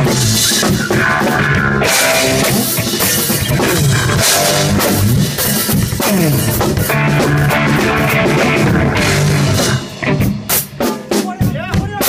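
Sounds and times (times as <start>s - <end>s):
drum and cymbal hits: 0.0s - 12.0s
drum kit playing: 0.0s - 12.0s.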